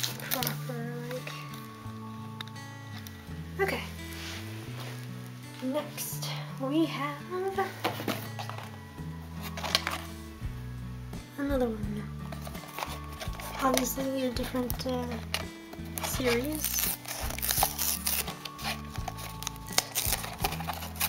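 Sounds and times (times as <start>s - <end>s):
background music with low bass: 0.0s - 21.0s
person speaking: 13.3s - 15.3s, 16.0s - 17.3s.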